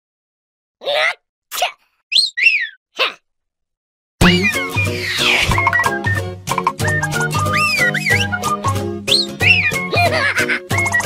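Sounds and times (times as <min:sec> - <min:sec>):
whistling two quick notes: 0:04.2 - 0:09.8.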